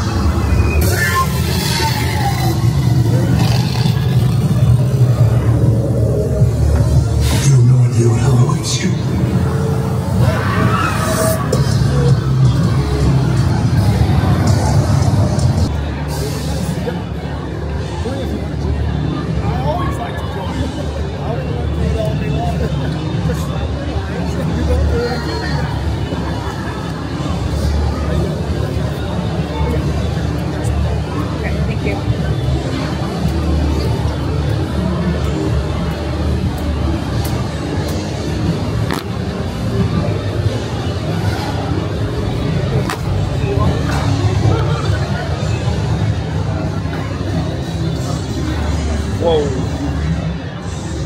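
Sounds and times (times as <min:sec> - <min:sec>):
faint voices: 0:00.0 - 0:51.0
low rumbling ambience: 0:00.0 - 0:51.0.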